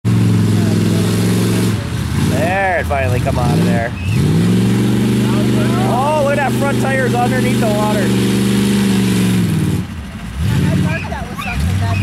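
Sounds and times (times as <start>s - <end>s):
vehicle engine running: 0.0s - 12.0s.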